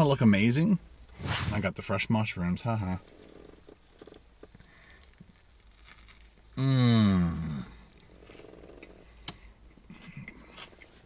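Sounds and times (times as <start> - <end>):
quiet chewing: 3.1 - 6.6.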